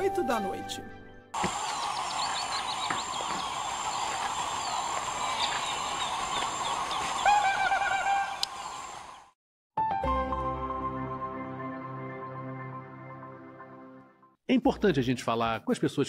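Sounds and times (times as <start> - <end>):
birds chirping: 1.4 - 9.4.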